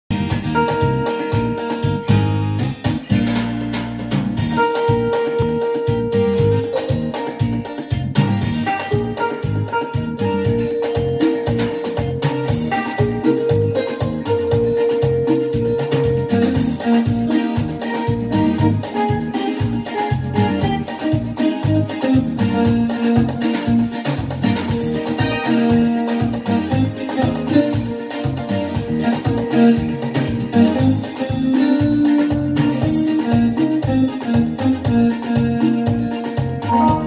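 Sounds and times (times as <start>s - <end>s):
keyboard beat and bass: 0.1s - 37.0s
plucked guitar-like notes: 0.1s - 37.0s.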